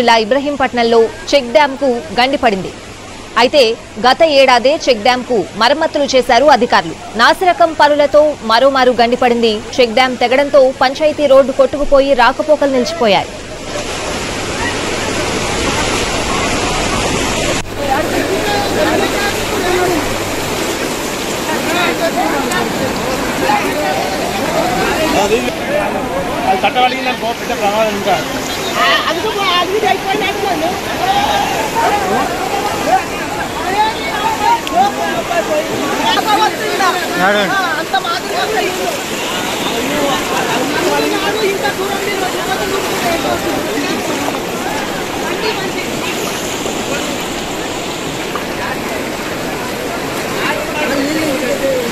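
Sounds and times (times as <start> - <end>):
floodwater rushing: 0.0 - 51.9
voices talking: 0.0 - 51.9.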